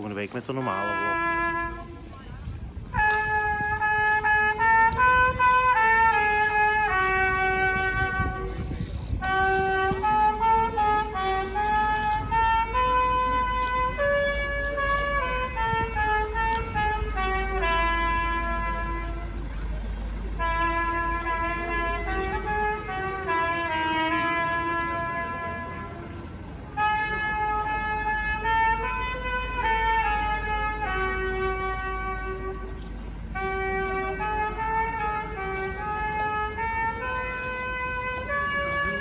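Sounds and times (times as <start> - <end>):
brass music long chords: 0.6 - 2.1, 2.9 - 19.6, 20.2 - 39.0.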